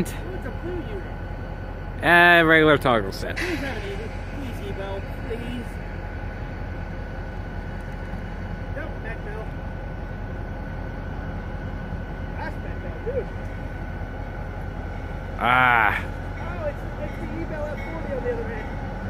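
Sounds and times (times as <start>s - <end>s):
distant diesel locomotives rumbling: 0.0s - 19.0s
thin steady whine: 0.0s - 19.0s.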